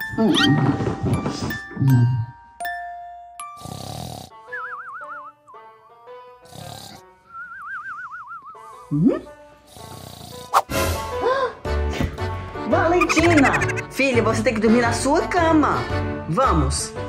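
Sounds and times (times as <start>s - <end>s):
soft background music: 0.0s - 17.0s
cartoon snoring: 3.6s - 4.5s, 6.4s - 7.1s, 8.9s - 10.7s
high wavering whistle: 4.5s - 5.4s, 7.3s - 8.6s.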